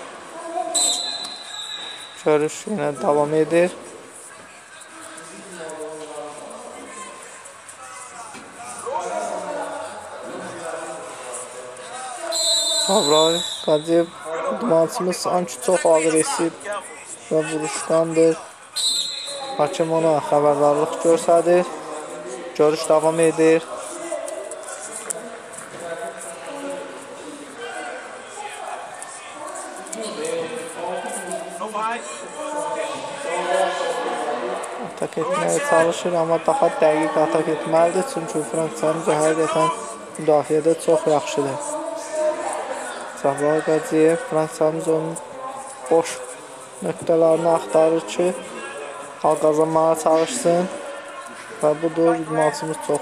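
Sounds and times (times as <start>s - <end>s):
hall background noise: 0.0s - 53.0s
voices talking: 0.0s - 53.0s
referee's whistle blast: 0.7s - 2.2s, 12.3s - 13.9s, 18.8s - 19.6s.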